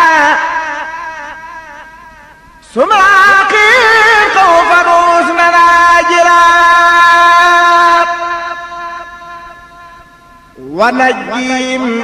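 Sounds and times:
voices chanting religious verse: 0.0s - 10.0s, 10.6s - 12.0s.

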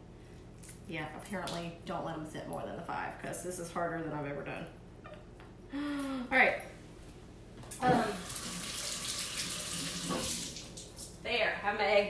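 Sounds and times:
kitchen faucet running: 7.9s - 11.1s.

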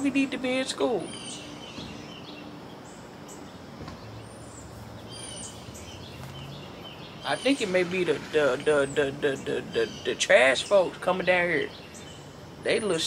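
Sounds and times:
faint low engine drone: 0.0s - 13.0s
small birds chirping: 0.0s - 13.0s
steady outdoor hum: 0.0s - 13.0s.

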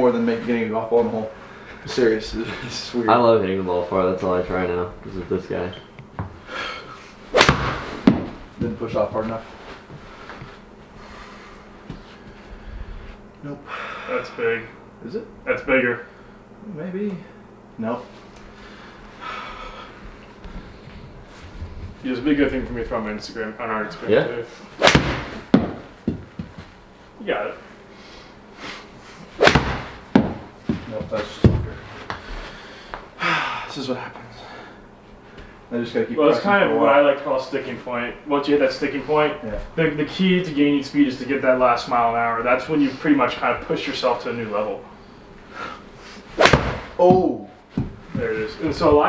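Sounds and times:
ball hitting screen: 7.3s - 8.7s, 24.8s - 26.6s, 29.4s - 31.7s, 46.4s - 47.9s
golf club striking ball: 7.4s - 8.4s, 24.8s - 25.9s, 29.4s - 30.5s, 46.4s - 47.0s.

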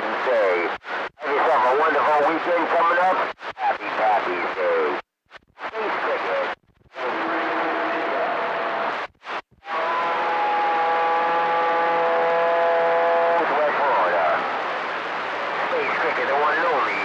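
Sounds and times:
radio receiver hiss: 0.0s - 7.6s, 13.4s - 17.0s
warbling radio tones: 15.7s - 17.0s.

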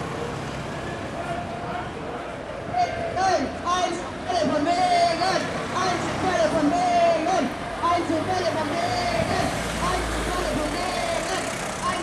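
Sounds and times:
marchers talking: 1.0s - 12.0s.

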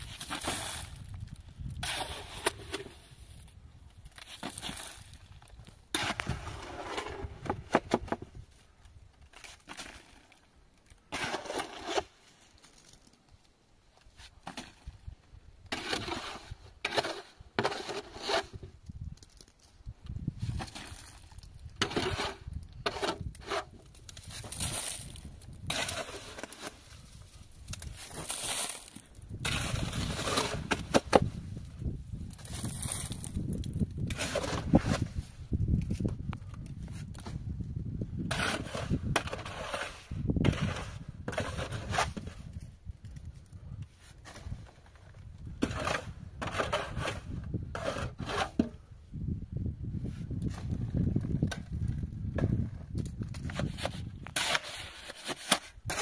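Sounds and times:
shovel scraping wet mud in metal basin: 0.1s - 1.0s, 1.8s - 3.0s, 5.9s - 8.2s, 11.1s - 12.1s, 15.7s - 18.7s, 21.8s - 26.9s, 27.8s - 31.3s, 34.0s - 35.2s, 38.3s - 42.3s, 45.6s - 48.8s, 53.4s - 56.0s.

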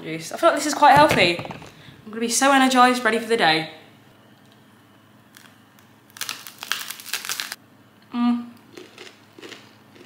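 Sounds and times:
crunching toasted bread: 5.2s - 7.6s, 8.7s - 10.0s.

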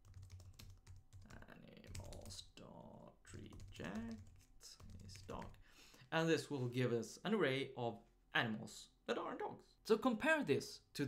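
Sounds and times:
typing on computer keyboard: 0.0s - 2.4s, 3.4s - 5.6s.

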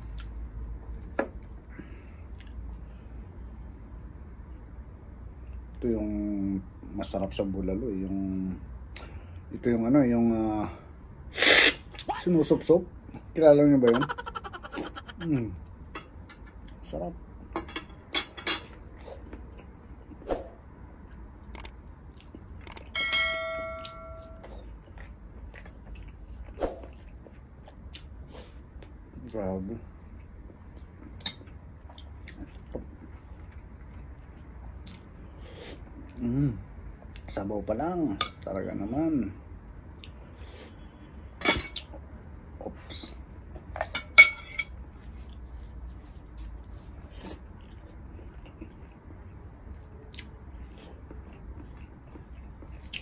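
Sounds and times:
man chewing food: 1.9s - 2.8s, 13.9s - 16.8s, 21.0s - 22.9s, 23.8s - 29.0s, 29.9s - 36.2s, 44.9s - 53.0s
bright ringing bell chime: 23.0s - 24.4s.

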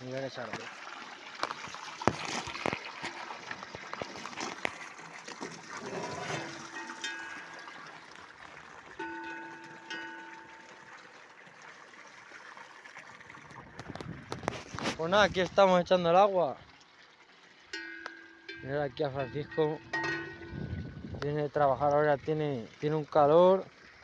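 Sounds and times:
water trickling and splashing: 0.0s - 24.0s
metal cowbell clanking: 6.0s - 8.0s, 9.0s - 11.1s, 17.7s - 20.9s.

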